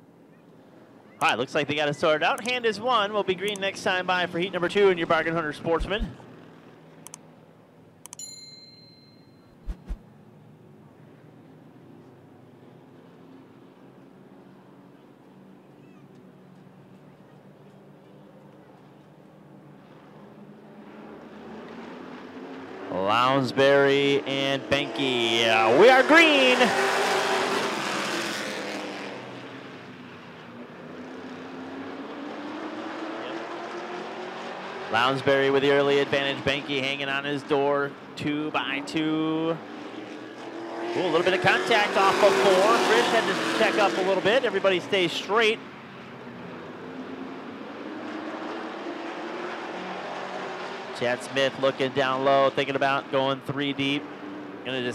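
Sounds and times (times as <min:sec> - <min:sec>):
racing car engines: 0:00.0 - 0:08.0, 0:10.0 - 0:54.9
bright bell ding: 0:08.2 - 0:09.6.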